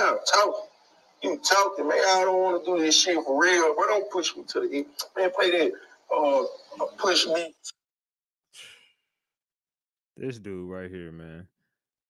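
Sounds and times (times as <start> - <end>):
faint breathy exhale: 8.6 - 9.0.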